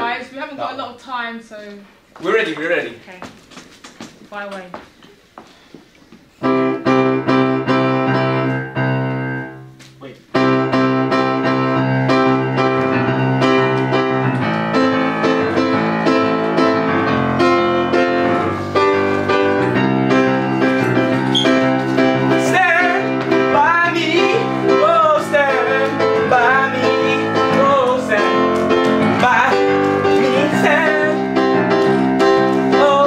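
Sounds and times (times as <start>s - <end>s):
upright piano chords: 6.3s - 33.0s.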